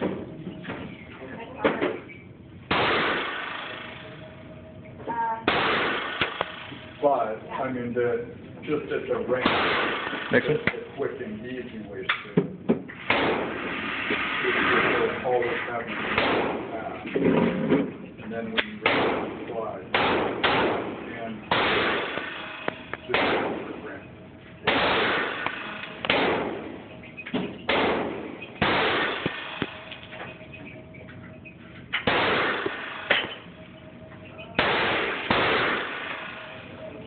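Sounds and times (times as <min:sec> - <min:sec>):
pistol shots with echo: 0:02.7 - 0:04.2, 0:05.4 - 0:06.8, 0:09.3 - 0:10.9, 0:13.0 - 0:13.7, 0:16.2 - 0:16.8, 0:18.8 - 0:26.9, 0:27.5 - 0:30.2, 0:31.9 - 0:33.6, 0:34.5 - 0:36.9.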